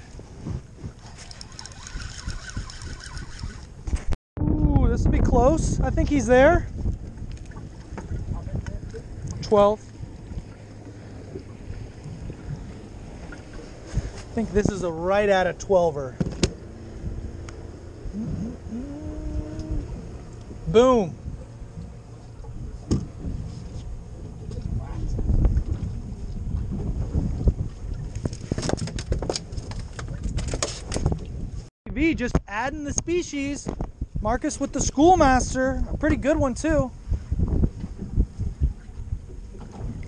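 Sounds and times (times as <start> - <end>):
steady low rumble: 0.0 - 28.6
water slapping boat hull: 0.0 - 31.7, 32.9 - 40.0
wind on microphone: 0.0 - 40.0.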